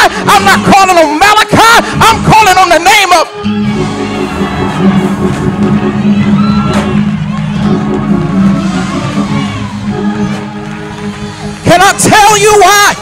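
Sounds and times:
congregation shouting and cheering: 0.0 - 13.0
keyboard holding low chord: 3.3 - 12.1.

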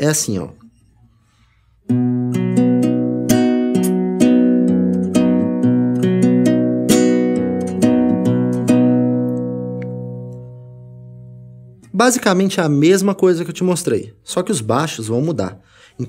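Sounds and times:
fingerpicked classical guitar: 1.9 - 12.0.

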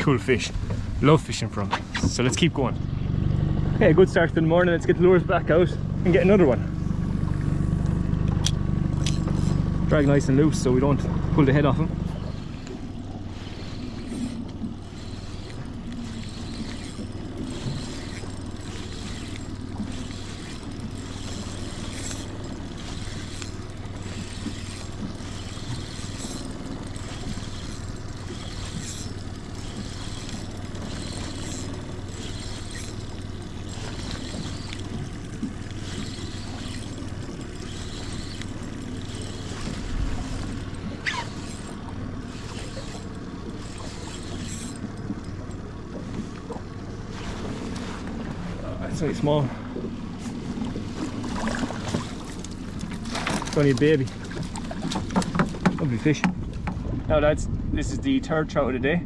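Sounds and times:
outboard motor running: 0.0 - 59.0
fishing reel clicks: 7.8 - 9.6, 12.1 - 45.6.

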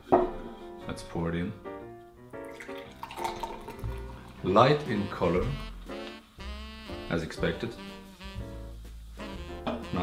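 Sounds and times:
instrumental background music: 0.0 - 10.0
carbonated drink pouring into glass: 2.5 - 4.5.

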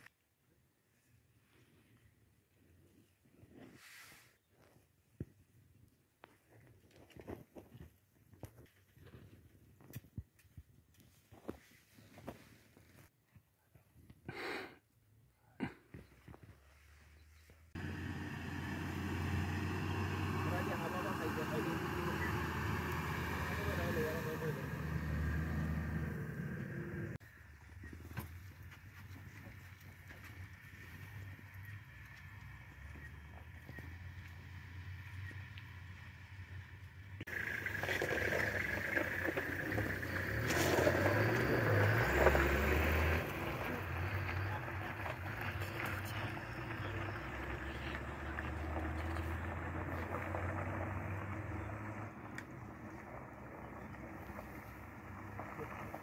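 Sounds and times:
vehicle engine idling: 17.7 - 56.0
indistinct voices: 18.7 - 27.2.

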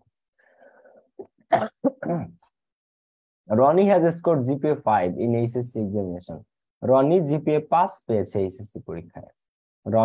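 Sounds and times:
man clearing his throat: 1.5 - 2.5.

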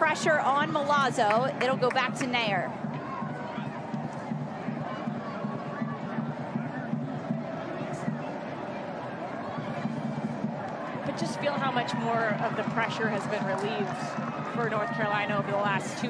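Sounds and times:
stadium crowd murmur: 0.0 - 16.0.

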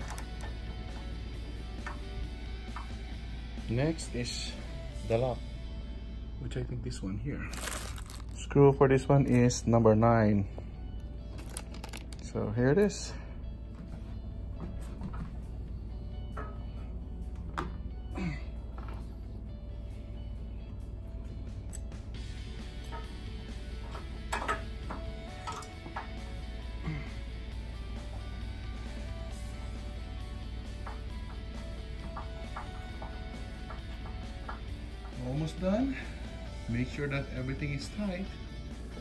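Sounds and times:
quiet background music: 0.0 - 39.0.

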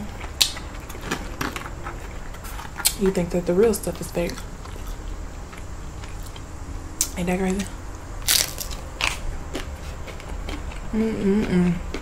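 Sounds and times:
crunching tortilla chip: 8.2 - 10.9.

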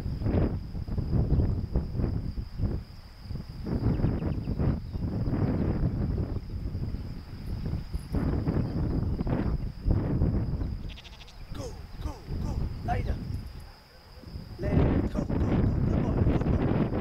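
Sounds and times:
sheep bleating: 10.8 - 11.7.

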